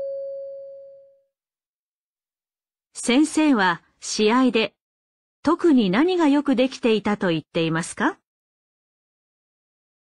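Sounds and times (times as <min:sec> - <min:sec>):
bell-like chime tone: 0:00.0 - 0:01.2.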